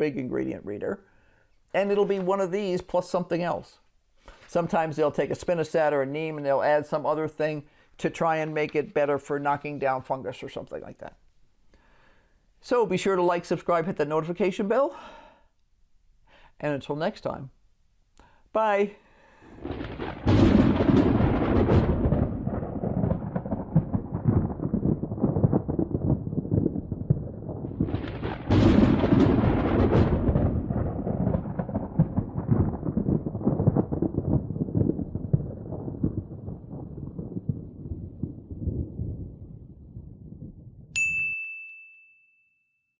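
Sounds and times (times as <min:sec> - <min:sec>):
deep rolling thunder: 0:19.4 - 0:41.0
low crackling rumble: 0:19.4 - 0:41.0
bright metallic ding: 0:41.0 - 0:43.0.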